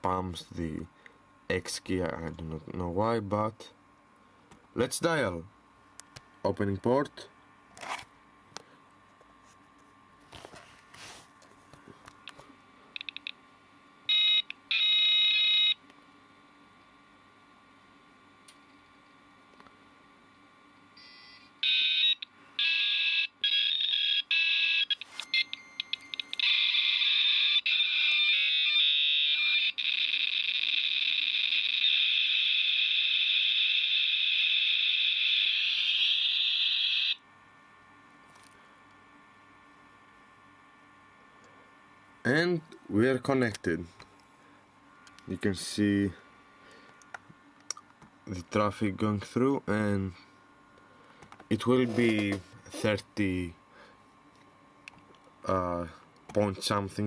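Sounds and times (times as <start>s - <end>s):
loud steady modem hiss: 0.0s - 57.0s
modem handshake beeps and chirps: 13.0s - 13.4s, 24.8s - 26.6s.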